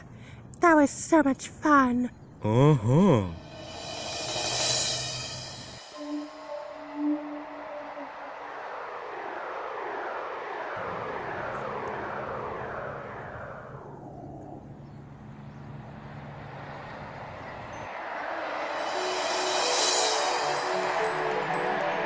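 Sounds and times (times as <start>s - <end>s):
whooshing rush of noise: 3.4s - 14.8s.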